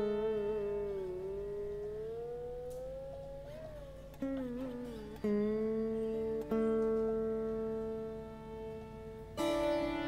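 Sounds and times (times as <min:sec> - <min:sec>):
slide guitar note gliding upward: 0:00.0 - 0:08.6.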